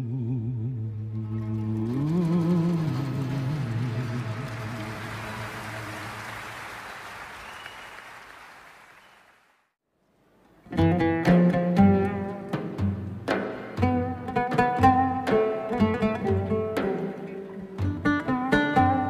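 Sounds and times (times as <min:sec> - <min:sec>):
man singing with vibrato: 0:00.0 - 0:04.8
audience applause: 0:02.7 - 0:09.7.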